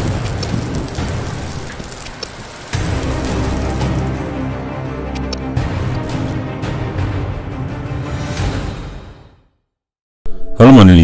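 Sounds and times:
low thunder rumble: 0.0 - 2.6
steady rain: 0.0 - 4.6.

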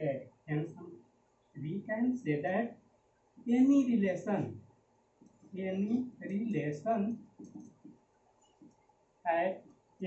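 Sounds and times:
marker writing on whiteboard: 7.2 - 8.8.

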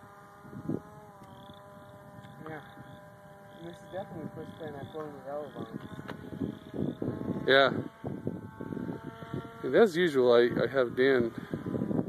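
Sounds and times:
model plane electric motor drone: 0.0 - 12.0.

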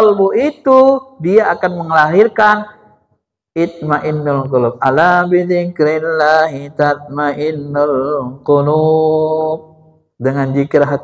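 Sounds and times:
man chanting melodic recitation: 0.0 - 2.9, 3.6 - 11.0.

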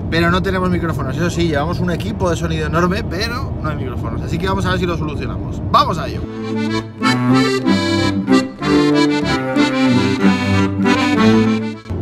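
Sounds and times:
accordion playing folk tune: 6.2 - 12.0.

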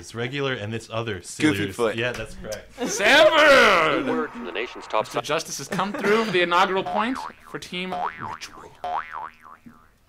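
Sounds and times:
warbling boing sound effect: 6.7 - 10.0.

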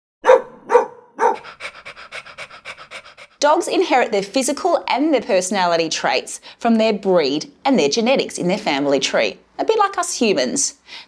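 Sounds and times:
dog barking: 0.2 - 2.7
dog panting: 0.8 - 3.4.

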